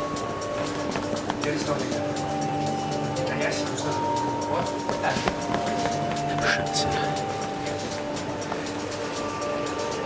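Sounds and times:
film score of held notes: 0:00.0 - 0:10.0.

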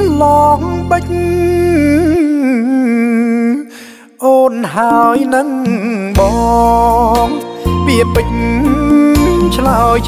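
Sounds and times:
man singing long note: 0:04.6 - 0:07.3
backing music: 0:04.9 - 0:10.0.

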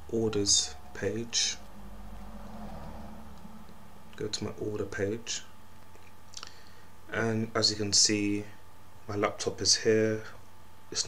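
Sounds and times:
low microphone hum with hiss: 0:00.0 - 0:11.0.

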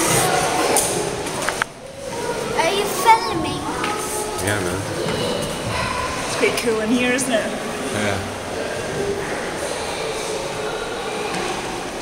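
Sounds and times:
distant crowd murmur: 0:00.0 - 0:12.0.

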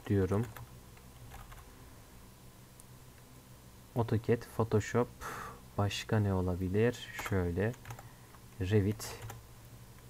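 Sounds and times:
low steady hum: 0:00.0 - 0:10.0
keyboard typing: 0:00.3 - 0:01.7, 0:07.2 - 0:08.1, 0:09.2 - 0:09.4.

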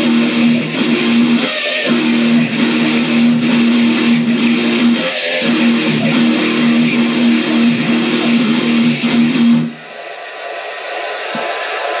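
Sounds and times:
electric guitar riff: 0:00.0 - 0:09.8.

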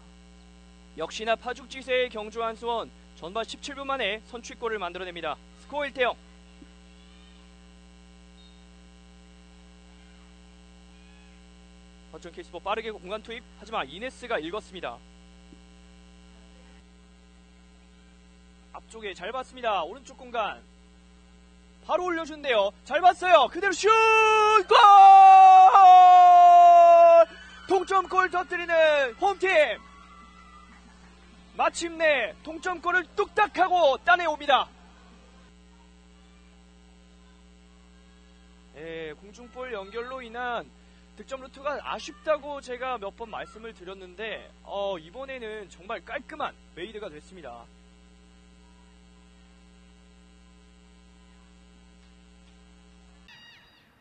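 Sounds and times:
electrical mains hum: 0:00.0 - 0:54.0
commentator shouting goal: 0:21.9 - 0:29.9, 0:31.6 - 0:34.7.

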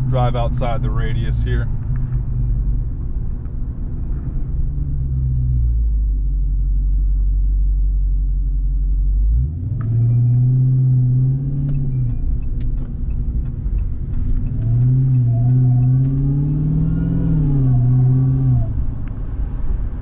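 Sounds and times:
car engine accelerating: 0:00.0 - 0:20.0.

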